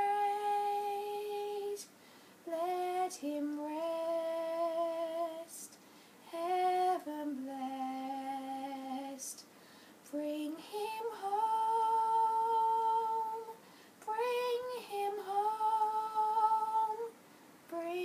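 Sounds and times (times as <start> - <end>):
girl singing unaccompanied: 0.0 - 18.0
girl taking a breath: 2.0 - 2.4, 9.5 - 10.0, 13.6 - 14.0.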